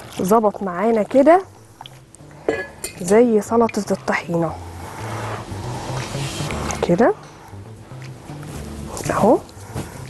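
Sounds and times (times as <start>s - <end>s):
background music with bass: 1.4s - 10.0s.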